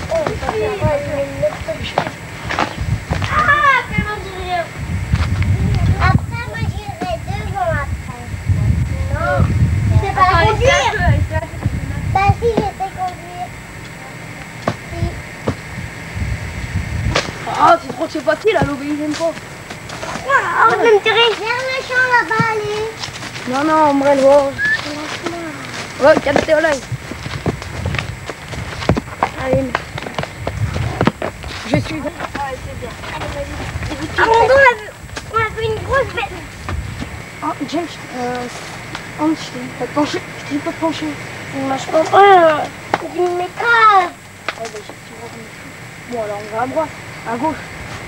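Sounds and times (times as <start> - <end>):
hooves clip-clopping: 0.0 - 4.4, 17.1 - 41.0
voices: 0.0 - 48.0.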